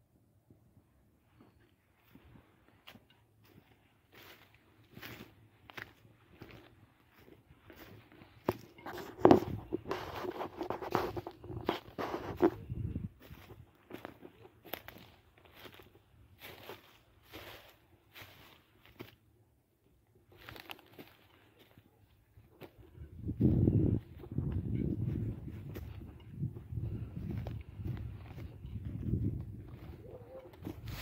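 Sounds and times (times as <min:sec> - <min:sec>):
footsteps crunching through dry grass: 0:01.2 - 0:31.0.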